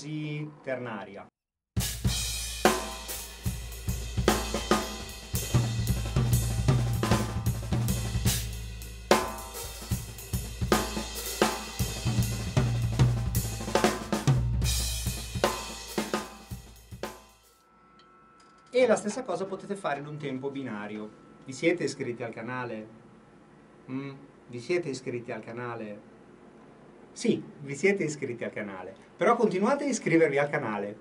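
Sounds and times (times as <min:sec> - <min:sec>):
drum kit swing groove: 0:01.8 - 0:17.5.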